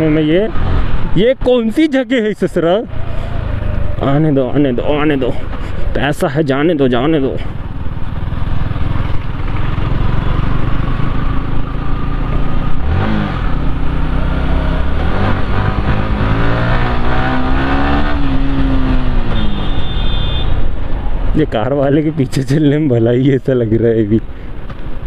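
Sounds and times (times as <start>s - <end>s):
motorcycle engine revving: 0.0s - 1.6s, 6.9s - 21.2s.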